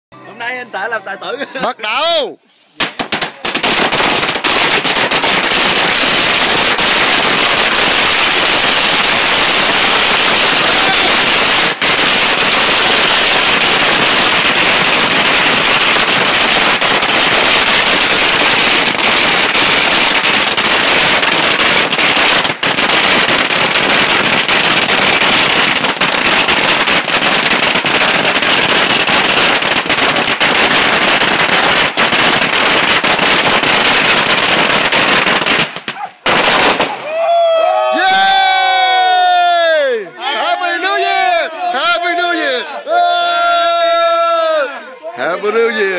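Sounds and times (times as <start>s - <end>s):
firecrackers rattling: 2.6s - 37.2s.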